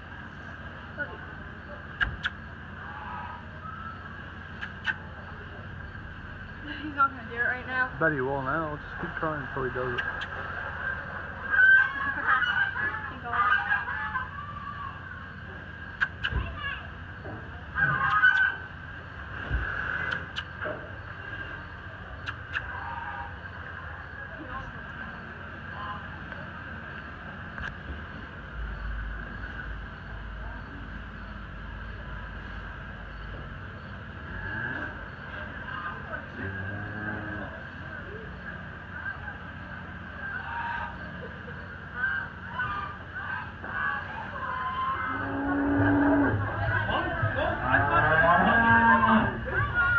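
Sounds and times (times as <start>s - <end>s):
faint distant voices: 0.0s - 49.9s
steady background hum: 0.0s - 49.9s.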